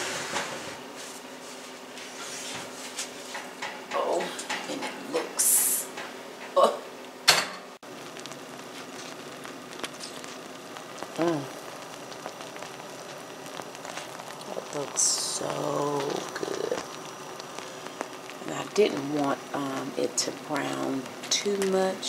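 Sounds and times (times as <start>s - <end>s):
hot cake crackling and bubbling: 0.0s - 22.0s.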